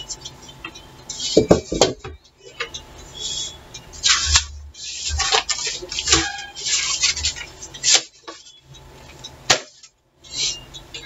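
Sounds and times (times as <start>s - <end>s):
rustling and scraping on desk: 1.1s - 9.2s.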